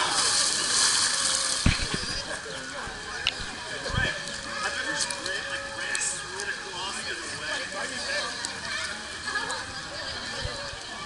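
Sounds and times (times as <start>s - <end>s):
rushing splash into pool: 0.0s - 2.8s.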